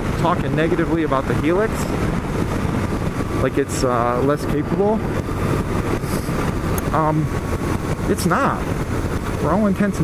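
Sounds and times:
motorcycle engine running: 0.0 - 10.0
road noise: 0.0 - 10.0
wind noise: 0.0 - 10.0.

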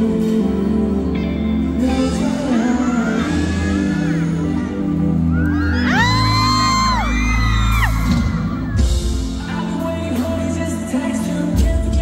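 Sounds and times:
live concert music with heavy bass: 0.0 - 12.0
audience screaming: 2.4 - 9.8.

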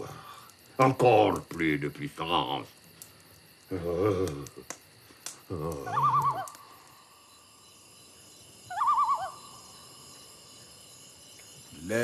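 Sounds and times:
faint night hiss: 0.0 - 12.0
owl trembling call: 5.8 - 6.9, 8.6 - 10.1.

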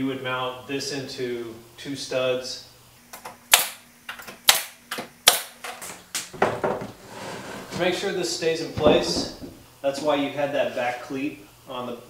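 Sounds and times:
nail gun firing: 3.5 - 3.8, 4.5 - 5.6.

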